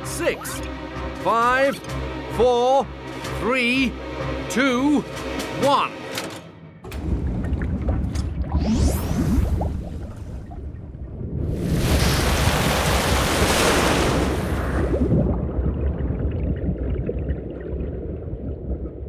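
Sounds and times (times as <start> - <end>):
deep rumble: 6.8 - 13.0, 14.4 - 19.0
rush of water: 7.0 - 16.8
underwater bubbling: 7.0 - 19.0.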